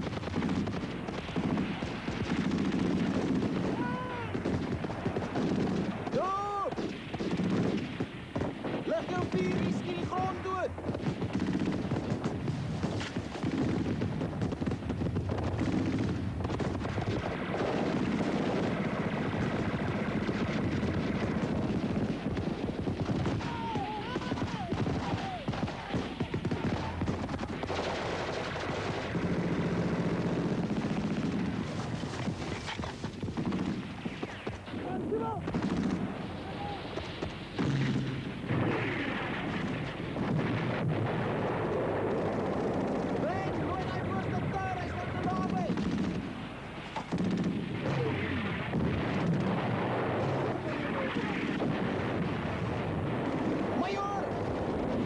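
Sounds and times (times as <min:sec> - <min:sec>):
rifle and machine-gun fire: 0:00.0 - 0:55.0.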